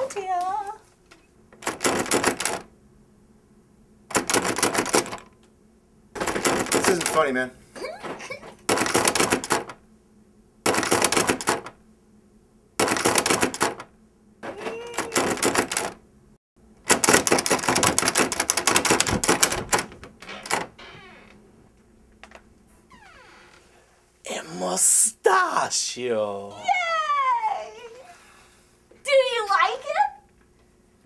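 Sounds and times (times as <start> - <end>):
metal door handle rattling: 1.6 - 2.6, 4.1 - 5.3, 15.2 - 16.0, 16.9 - 20.8.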